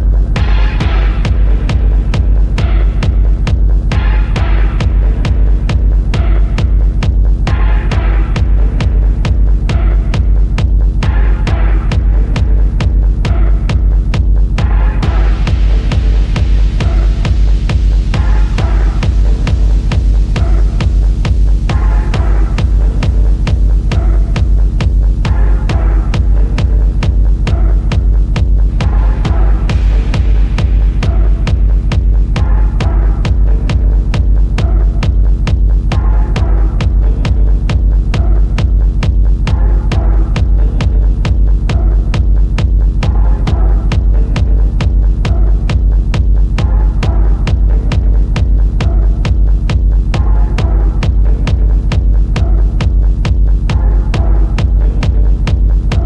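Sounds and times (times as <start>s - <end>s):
dark techno music: 0.0s - 56.0s
deep droning bass: 0.0s - 56.0s
kick drum: 0.0s - 56.0s.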